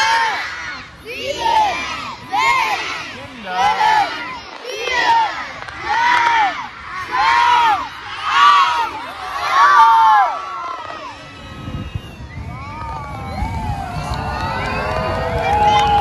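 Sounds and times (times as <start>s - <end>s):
crowd counting down in chorus: 0.0s - 11.3s.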